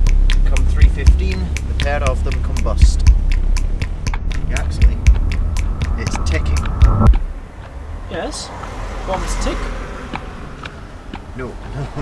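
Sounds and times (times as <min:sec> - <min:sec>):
clock ticking: 0:00.0 - 0:07.8.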